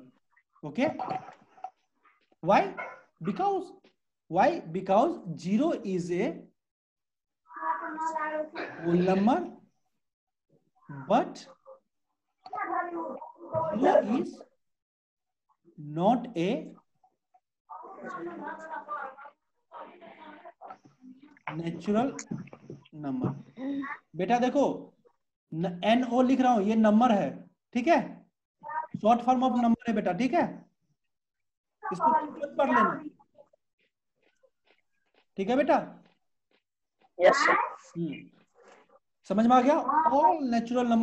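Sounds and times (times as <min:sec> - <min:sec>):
man speaking: 0:02.4 - 0:06.5, 0:08.7 - 0:09.6, 0:10.9 - 0:11.6, 0:13.6 - 0:14.5, 0:21.5 - 0:22.3, 0:29.0 - 0:30.6, 0:31.9 - 0:33.1, 0:35.4 - 0:36.0, 0:38.0 - 0:38.4, 0:39.2 - 0:41.0.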